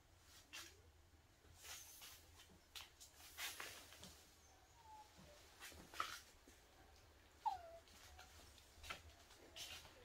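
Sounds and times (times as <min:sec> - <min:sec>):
dog whimpering: 0:04.4 - 0:05.4, 0:07.4 - 0:08.3.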